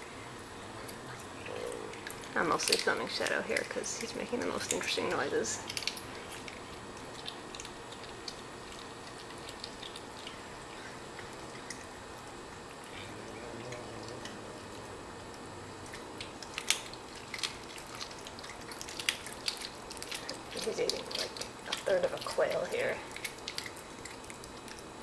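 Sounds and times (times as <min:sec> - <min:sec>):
cat chewing and crunching bones: 0:00.0 - 0:25.0.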